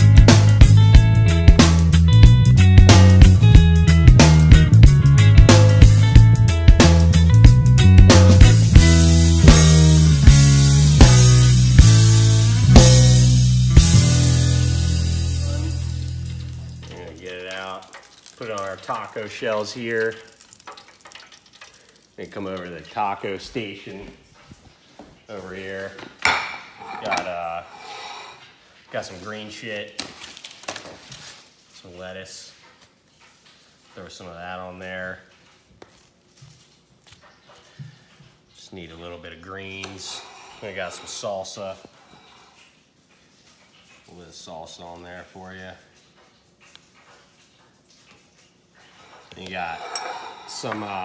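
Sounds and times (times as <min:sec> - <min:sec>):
hot oil crackling and sizzling: 0:00.0 - 0:23.8.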